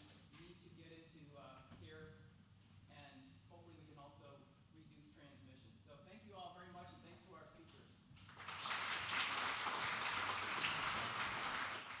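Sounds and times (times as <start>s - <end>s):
audience applauding: 8.3s - 12.0s.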